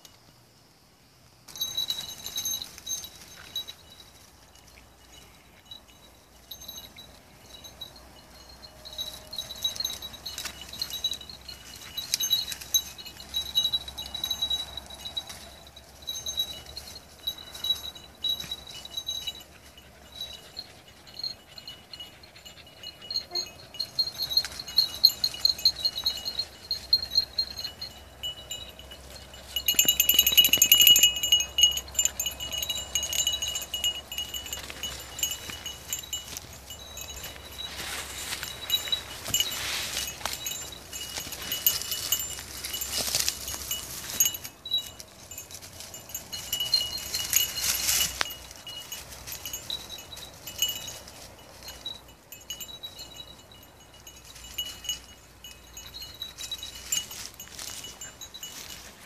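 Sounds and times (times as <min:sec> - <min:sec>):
small bell jingling: 0:01.5 - 0:59.0
rustling of scrub: 0:29.4 - 0:51.1.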